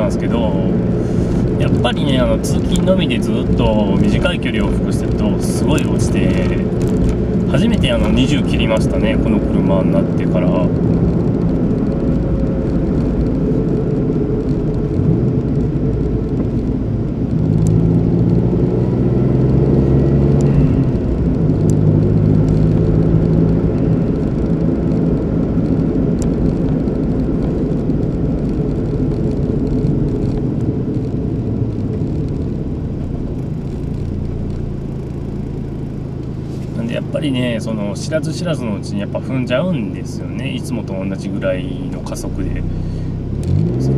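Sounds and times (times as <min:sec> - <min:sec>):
car engine: 0:00.0 - 0:43.9
road noise: 0:00.0 - 0:43.9.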